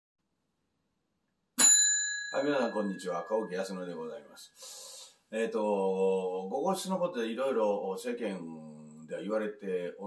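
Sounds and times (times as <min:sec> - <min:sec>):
bright bell ding ringing: 0:01.6 - 0:03.8.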